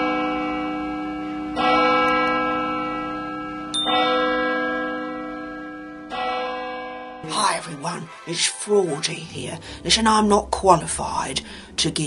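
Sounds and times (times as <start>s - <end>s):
church bell tolling: 0.0s - 11.4s.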